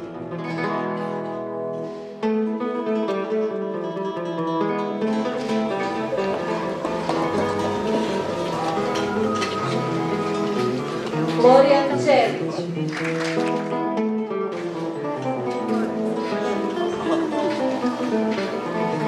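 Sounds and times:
plucked guitar melody: 0.0 - 19.0
room noise: 5.1 - 13.6, 14.5 - 19.0.

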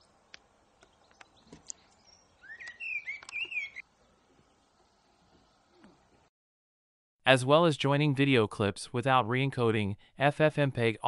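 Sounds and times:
small chirps and ticks: 0.2 - 3.8
songbird warbling whistled notes: 1.0 - 3.8.

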